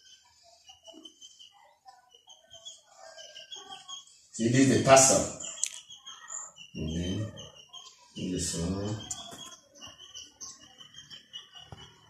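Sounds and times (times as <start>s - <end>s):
faint high chirps: 0.0s - 12.0s.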